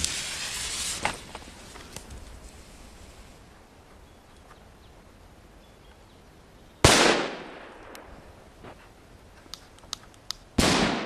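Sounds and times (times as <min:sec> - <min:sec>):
firecracker fuse hissing: 0:00.0 - 0:03.5.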